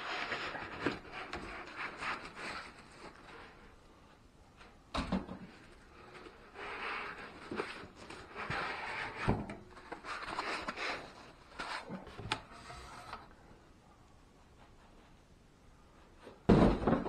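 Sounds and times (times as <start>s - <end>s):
plastic and foam rustling: 0.0s - 13.6s.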